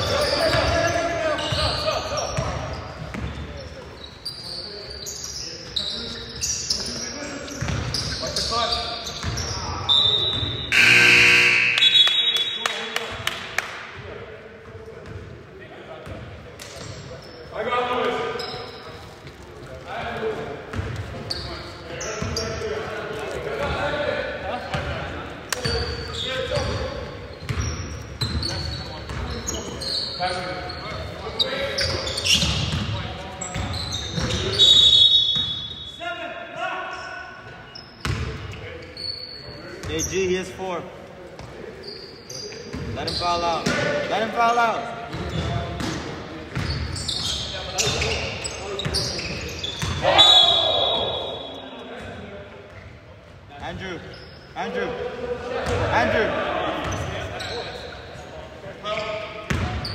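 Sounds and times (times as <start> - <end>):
sneaker squeaks: 0.0 - 12.9, 16.0 - 19.8, 20.6 - 23.9, 24.6 - 36.0, 37.0 - 40.8, 41.4 - 54.9, 55.6 - 59.9
players calling out: 4.5 - 12.8
loud tone: 10.7 - 12.4.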